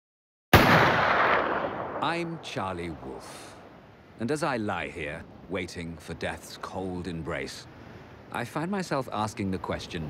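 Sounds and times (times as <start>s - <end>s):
loud bang: 0.5s - 2.5s.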